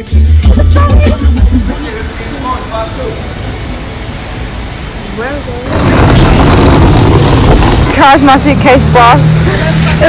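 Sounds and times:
car rushing noise: 0:03.2 - 0:10.0.

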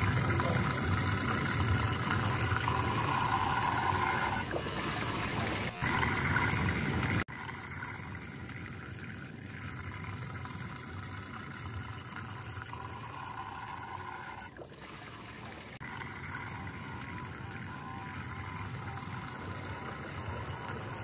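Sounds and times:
flowing river water: 0:00.0 - 0:21.0
water rushing down a whirlpool: 0:00.0 - 0:21.0.

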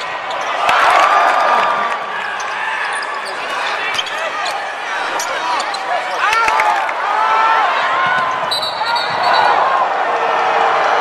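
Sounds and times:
sneakers squeaking on floor: 0:00.0 - 0:00.8, 0:02.2 - 0:06.4, 0:08.4 - 0:09.6
crowd chatter: 0:00.0 - 0:11.0
referee's whistle blast: 0:08.5 - 0:09.6.

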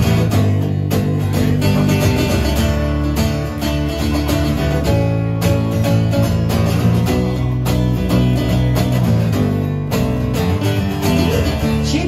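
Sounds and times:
acoustic guitars strumming chords: 0:00.0 - 0:12.0.

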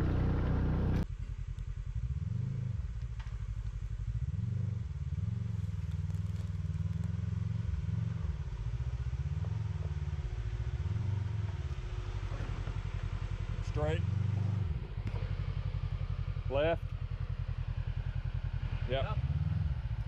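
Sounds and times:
off-road vehicle engine revving: 0:00.0 - 0:01.1, 0:01.8 - 0:20.0.

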